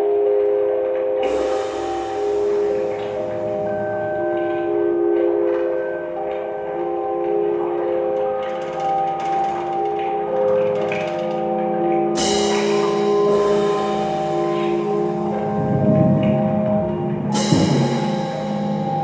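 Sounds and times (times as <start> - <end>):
drum kit played with mallets: 12.2 - 19.0
bright noisy drum hit: 17.3 - 19.0.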